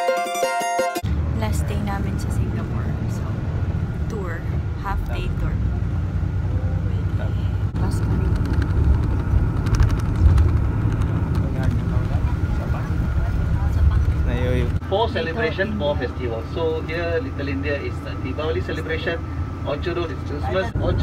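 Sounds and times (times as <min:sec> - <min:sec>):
coach engine and road rumble: 0:01.0 - 0:21.0.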